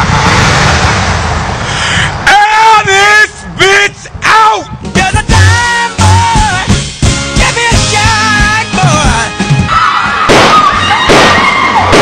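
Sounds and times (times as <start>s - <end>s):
gunshot bangs: 10.3s - 12.0s.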